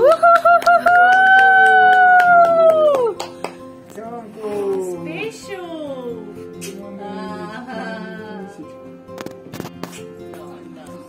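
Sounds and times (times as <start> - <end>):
person cheering high note: 0.0 - 3.2
hands clapping: 0.0 - 4.0, 9.2 - 10.5.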